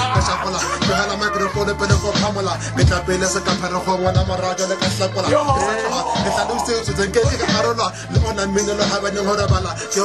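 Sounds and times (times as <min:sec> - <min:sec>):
hip hop beat: 0:00.0 - 0:10.0
person rapping: 0:00.0 - 0:10.0.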